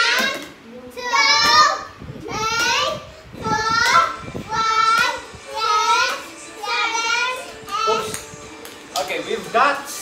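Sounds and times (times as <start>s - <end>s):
child counting aloud: 1.0s - 8.1s.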